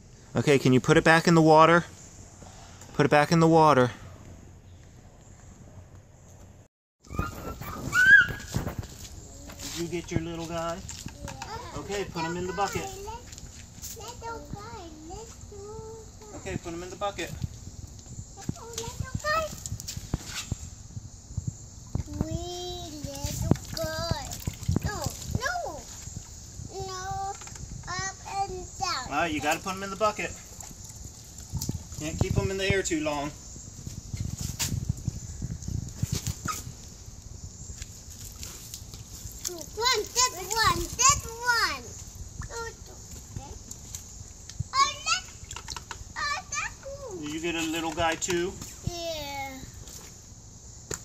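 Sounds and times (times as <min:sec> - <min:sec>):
toddler sing-song calls: 0:07.0 - 0:08.7
child exclaiming: 0:11.2 - 0:13.2, 0:14.0 - 0:16.4, 0:22.2 - 0:25.8, 0:26.7 - 0:29.1, 0:39.5 - 0:43.5, 0:44.7 - 0:45.3, 0:46.2 - 0:47.2, 0:48.9 - 0:49.7.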